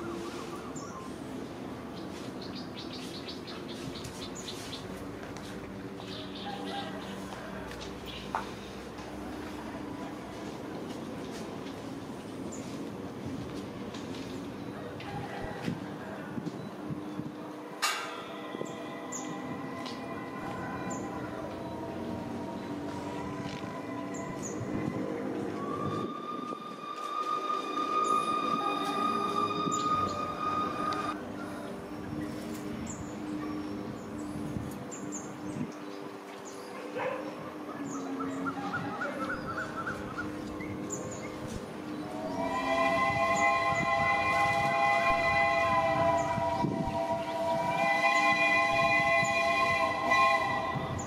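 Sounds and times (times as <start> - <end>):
steam locomotive approaching: 0.0 - 51.0
steady high tone: 17.8 - 31.2
steam locomotive chord whistle: 17.8 - 31.2, 42.0 - 51.0.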